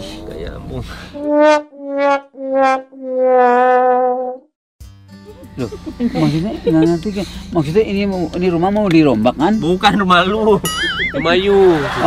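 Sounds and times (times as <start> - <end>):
brass horn blasts: 1.1 - 4.4.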